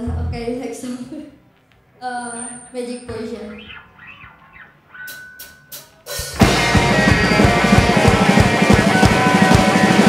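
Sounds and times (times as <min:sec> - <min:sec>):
guitar feedback tone: 0:03.7 - 0:10.0.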